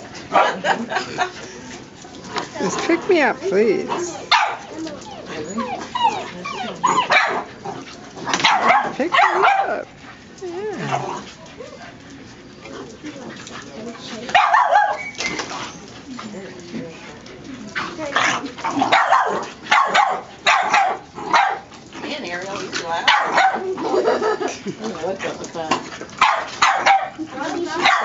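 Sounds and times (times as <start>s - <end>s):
puppy barking: 0.3s - 0.7s, 4.2s - 4.7s, 5.6s - 7.5s, 8.3s - 9.9s, 14.3s - 15.1s, 18.8s - 21.7s, 23.0s - 23.7s, 26.2s - 28.0s.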